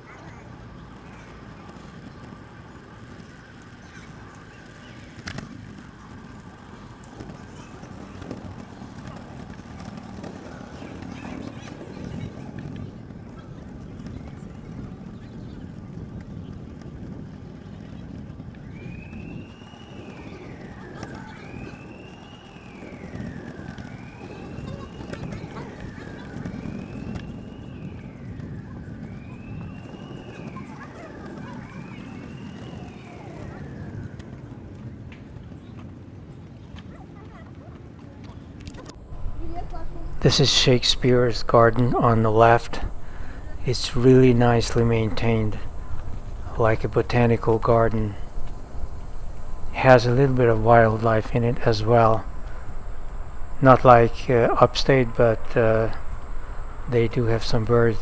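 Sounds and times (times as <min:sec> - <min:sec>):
kick scooter rolling on pavement: 0:00.0 - 0:58.0
rising and falling whine: 0:38.6 - 0:58.0.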